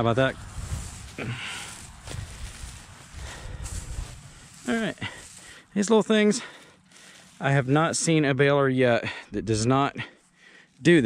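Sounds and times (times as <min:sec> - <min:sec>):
dry hay rustling and crackling: 0:00.0 - 0:08.4.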